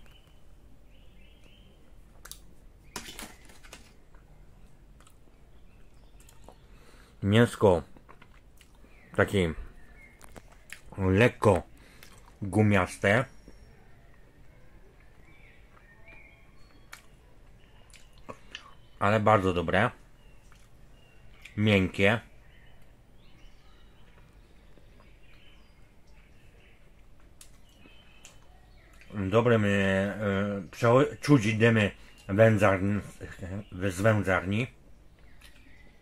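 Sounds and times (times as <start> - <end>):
faint chewing: 3.4 - 7.2, 7.8 - 11.0, 11.7 - 12.4, 13.4 - 18.9, 20.2 - 21.6, 22.6 - 29.2, 35.0 - 36.0
person chewing: 6.2 - 6.7, 7.9 - 9.0, 10.2 - 10.9, 11.8 - 12.4, 15.0 - 18.8, 20.4 - 21.6.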